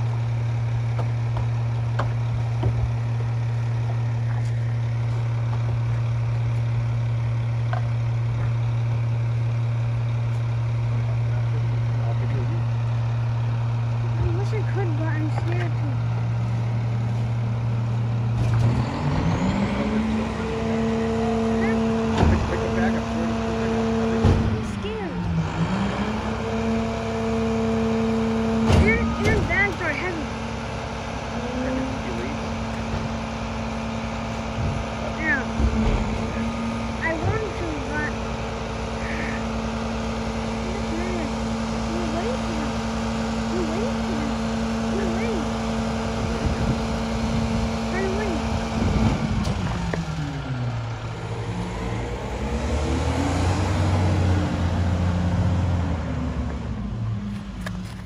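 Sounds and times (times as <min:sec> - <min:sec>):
garbage truck diesel engine: 0:00.0 - 0:58.0
hydraulics working: 0:00.0 - 0:58.0.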